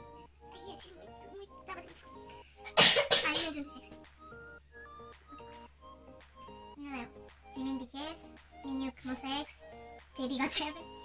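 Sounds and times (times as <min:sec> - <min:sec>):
soft background music: 0:00.0 - 0:11.0
woman coughing: 0:02.6 - 0:03.7.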